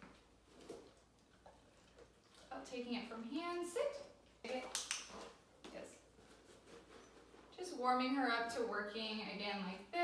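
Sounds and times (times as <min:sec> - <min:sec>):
woman speaking: 0:02.5 - 0:04.8, 0:07.6 - 0:10.0.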